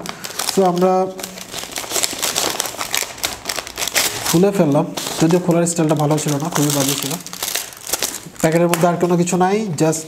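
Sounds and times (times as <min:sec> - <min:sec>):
paper crinkling and rustling: 0:00.0 - 0:09.4.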